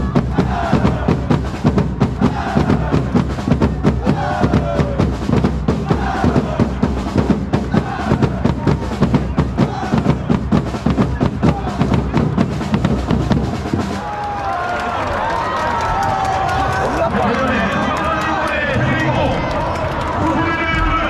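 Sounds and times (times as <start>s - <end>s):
stadium crowd shouting: 0.0s - 12.4s, 13.0s - 21.0s
bass drums beating fast: 0.0s - 14.2s.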